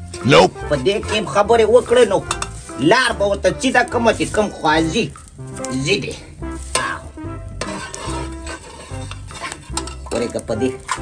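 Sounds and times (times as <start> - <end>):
metal ladle scraping steel pan: 0.0 - 2.9, 4.1 - 11.0
ladle clinking against pan: 7.6 - 10.2.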